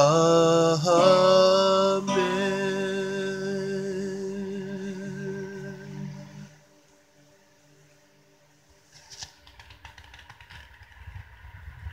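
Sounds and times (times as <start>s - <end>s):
small irregular clicks and knocks: 9.1s - 11.5s.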